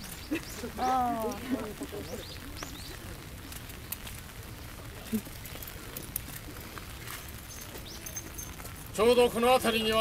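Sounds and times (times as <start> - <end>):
light rain: 0.0 - 10.0
raindrops ticking: 0.0 - 10.0.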